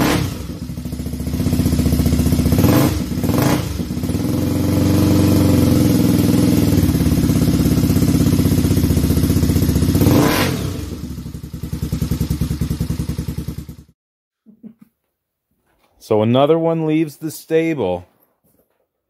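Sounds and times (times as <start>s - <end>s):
three-wheeler engine revving: 0.0s - 13.9s.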